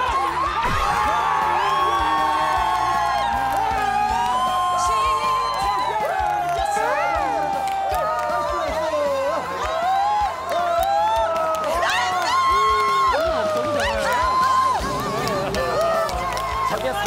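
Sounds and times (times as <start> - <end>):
background music: 0.0 - 17.0
supporters cheering and whooping: 0.0 - 17.0.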